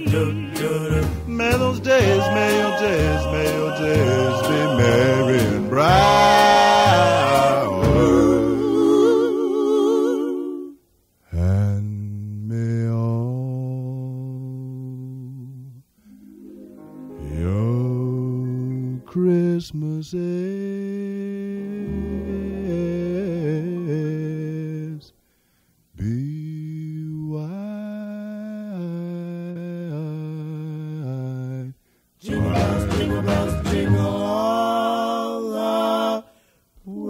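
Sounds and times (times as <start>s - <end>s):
person humming a slow melody: 6.8s - 16.0s, 17.1s - 25.1s, 26.0s - 31.7s
man singing long note: 17.1s - 25.1s.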